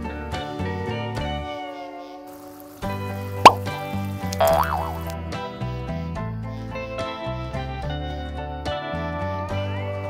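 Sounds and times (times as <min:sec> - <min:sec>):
cheerful background music: 0:01.7 - 0:10.0
sharp rising plop effect: 0:03.4 - 0:03.7, 0:04.4 - 0:05.2
wobbling up-and-down tone: 0:04.4 - 0:05.1.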